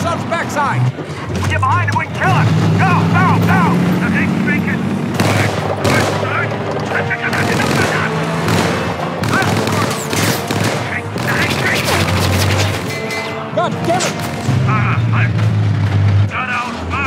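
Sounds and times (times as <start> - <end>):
tank engines running: 0.0 - 17.0
tank tracks moving: 0.0 - 17.0
machine-gun fire: 5.1 - 12.9.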